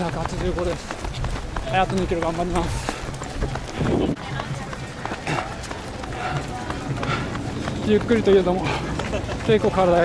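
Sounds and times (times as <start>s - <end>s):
runner's footfalls: 0.0s - 10.0s
wind rumble on microphone: 0.2s - 5.6s.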